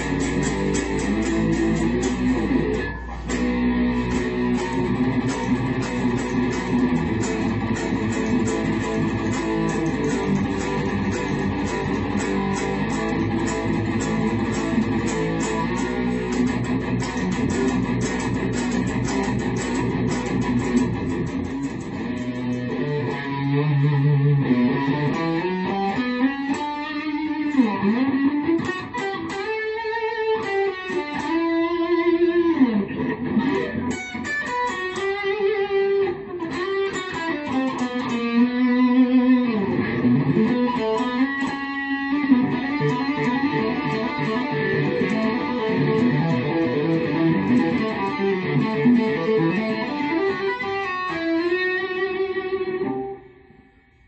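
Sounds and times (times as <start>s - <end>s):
electric guitar picked notes: 0.0s - 54.0s.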